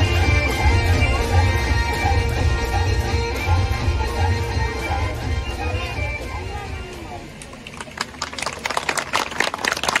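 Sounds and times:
small group clapping: 0:07.4 - 0:10.0.

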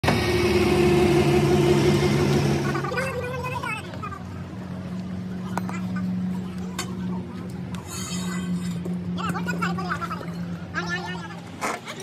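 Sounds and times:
heavy diesel engine running: 0:00.0 - 0:11.3.

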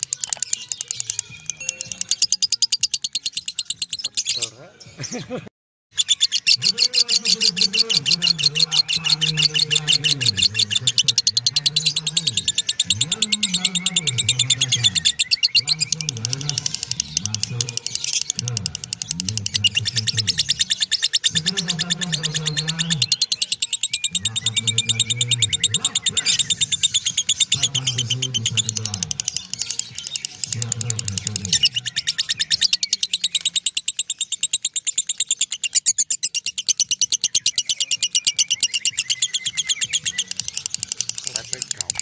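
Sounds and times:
lovebird chattering trill: 0:00.0 - 0:04.5, 0:05.9 - 0:42.0.

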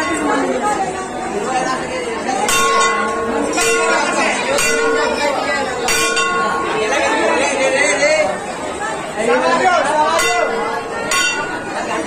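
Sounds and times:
brass temple bell ringing: 0:00.0 - 0:00.9, 0:02.4 - 0:07.4, 0:10.0 - 0:12.0
crowd chattering: 0:00.0 - 0:12.0.

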